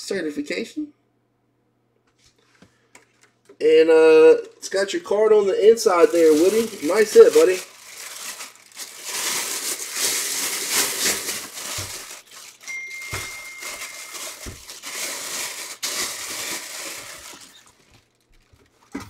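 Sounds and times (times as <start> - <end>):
plastic bag crinkling: 4.5 - 19.0.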